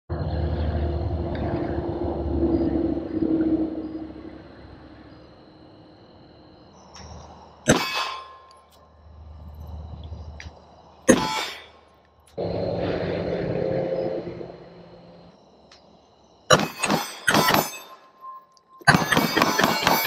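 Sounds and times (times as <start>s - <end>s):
low steady hum: 0.1s - 16.5s.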